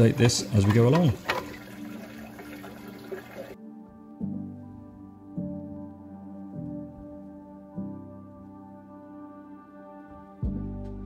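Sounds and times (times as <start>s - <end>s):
water trickling and splashing: 0.0s - 3.6s
soft background music: 0.0s - 11.0s.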